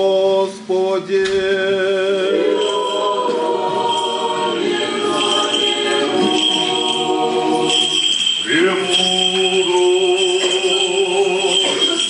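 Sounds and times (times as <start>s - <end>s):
choir singing a cappella: 1.4s - 12.0s.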